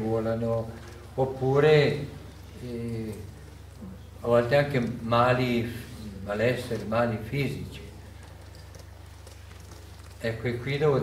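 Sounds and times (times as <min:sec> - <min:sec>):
faint room noise: 0:00.0 - 0:11.0
low electrical hum: 0:00.0 - 0:11.0.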